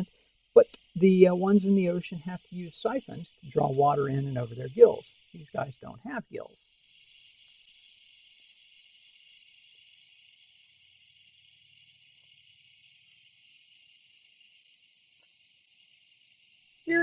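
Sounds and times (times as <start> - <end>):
faint high-pitched hiss: 0.0 - 17.0.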